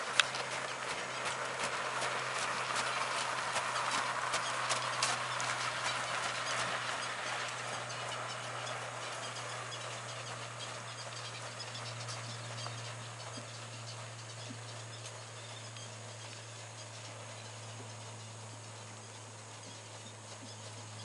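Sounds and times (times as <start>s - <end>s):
horse hoofbeats on sand: 0.0s - 21.0s
steady low hum: 0.0s - 21.0s.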